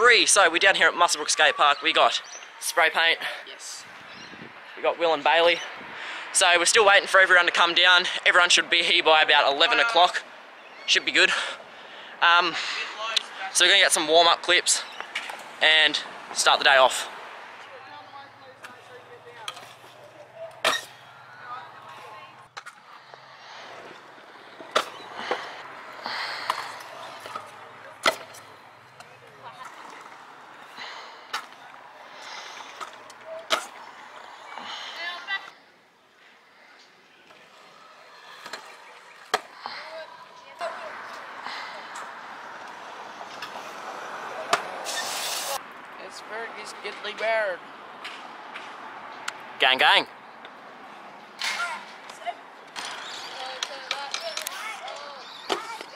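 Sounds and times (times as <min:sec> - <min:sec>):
scooter wheels rolling on concrete: 0:12.4 - 0:55.9
scooter clacking on concrete: 0:51.5 - 0:55.9.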